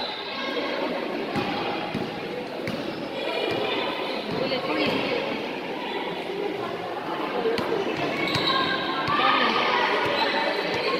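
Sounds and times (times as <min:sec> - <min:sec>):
voices of players and spectators: 0:00.0 - 0:10.9
basketball bouncing on court floor: 0:01.4 - 0:02.9.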